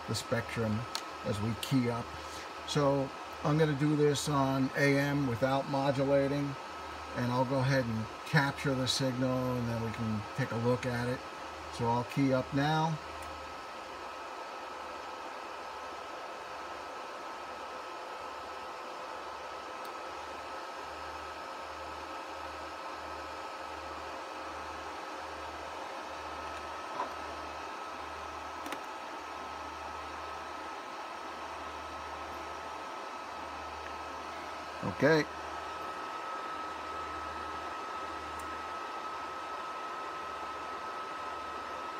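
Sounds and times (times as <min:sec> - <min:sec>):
cooling fan noise: 0:00.0 - 0:41.9
faint high whine: 0:00.0 - 0:41.9.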